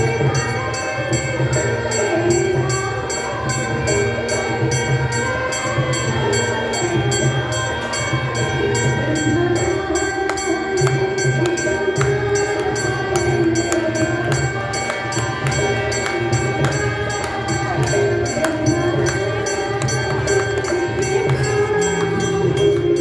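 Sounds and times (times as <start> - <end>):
group singing a hymn: 0.0 - 23.0
fast percussion beat: 10.7 - 23.0.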